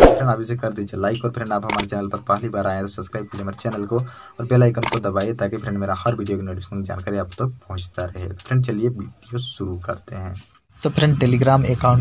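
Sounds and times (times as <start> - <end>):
man speaking: 0.0 - 12.0
mouse click sound effect: 1.7 - 1.9.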